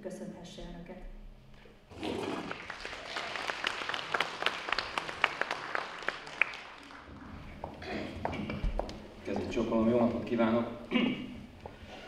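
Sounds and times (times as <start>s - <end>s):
audience applauding: 2.0s - 7.8s.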